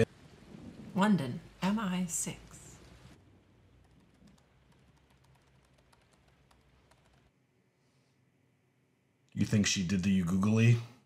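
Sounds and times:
faint keyboard typing: 0:02.6 - 0:07.4.

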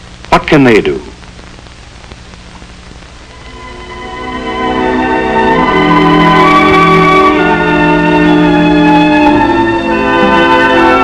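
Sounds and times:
faint crackles: 0:00.0 - 0:03.7
film soundtrack hiss: 0:00.0 - 0:11.0.

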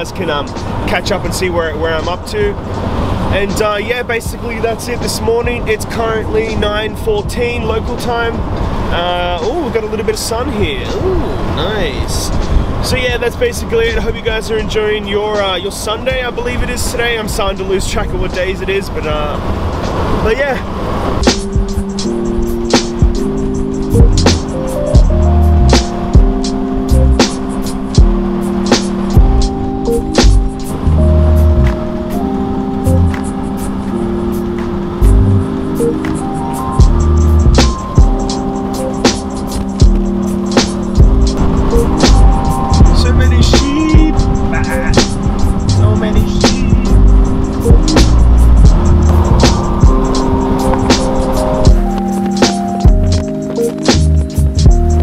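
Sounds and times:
background music with steady beat: 0:00.0 - 0:09.7, 0:19.6 - 0:55.0.

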